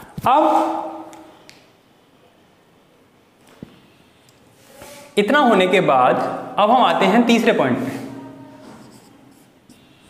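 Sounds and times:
marker writing on whiteboard: 7.8s - 10.0s.

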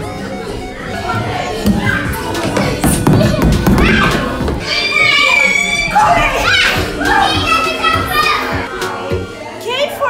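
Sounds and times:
background music: 0.0s - 10.0s
children shouting and squealing: 0.8s - 8.9s.

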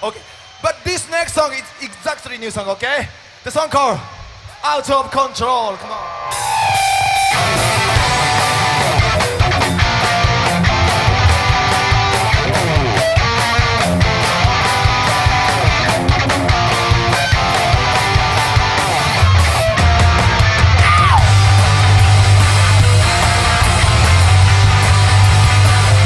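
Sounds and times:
loud electric guitars: 6.0s - 26.0s
driving drum beat: 6.3s - 26.0s.

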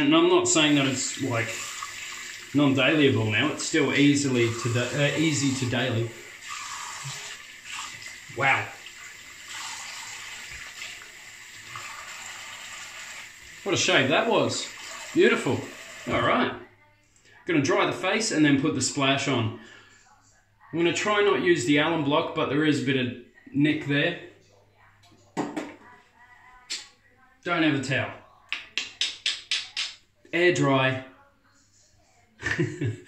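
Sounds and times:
tap running into a sink: 9.5s - 11.0s
items knocking on sink counter: 25.4s - 25.8s.

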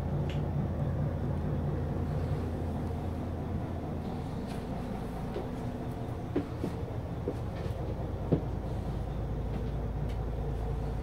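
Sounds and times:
bus engine idling: 0.0s - 11.0s.

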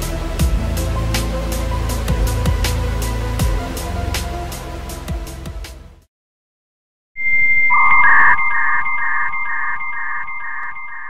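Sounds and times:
lower electronic tone: 7.2s - 11.0s
pulsing electronic beep: 7.2s - 11.0s
steady high tone: 7.2s - 11.0s.

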